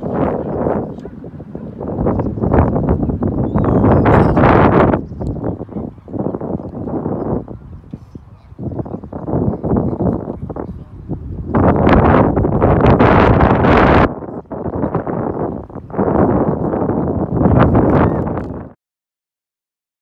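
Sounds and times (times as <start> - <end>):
wind buffeting microphone: 0.0 - 18.8.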